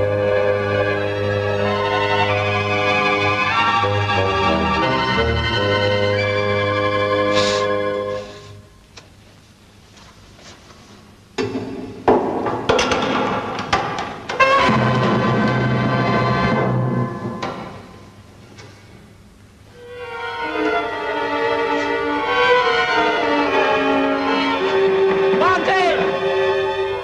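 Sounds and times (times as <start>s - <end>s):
drum and brass hits: 14.3s - 18.0s.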